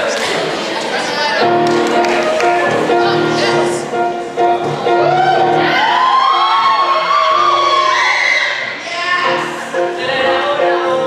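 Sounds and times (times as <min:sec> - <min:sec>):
piano accompaniment: 0:01.3 - 0:11.0.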